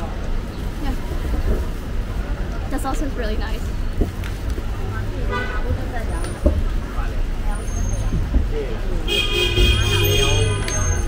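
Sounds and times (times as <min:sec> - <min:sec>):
low rumble of traffic: 0:00.0 - 0:11.0
voices talking: 0:00.0 - 0:11.0.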